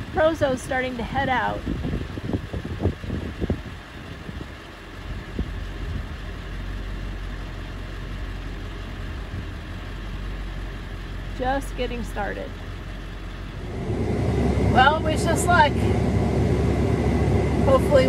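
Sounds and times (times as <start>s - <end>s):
vehicle engine idling: 0.0s - 18.0s
low thumps: 13.4s - 18.0s.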